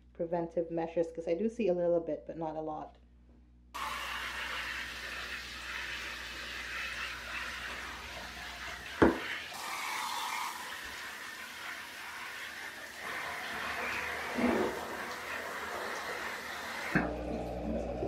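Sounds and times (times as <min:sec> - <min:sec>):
shower spraying water on leaves: 0:03.8 - 0:17.0.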